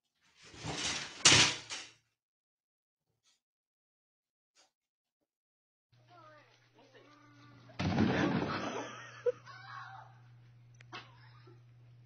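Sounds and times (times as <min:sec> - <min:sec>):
shower curtain and rod crashing: 0:00.3 - 0:02.0, 0:07.8 - 0:08.9.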